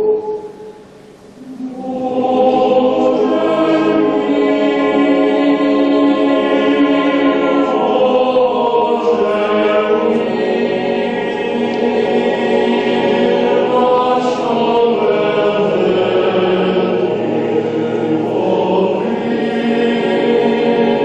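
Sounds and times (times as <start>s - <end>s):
boys' choir singing: 0.0s - 0.8s, 1.4s - 21.0s.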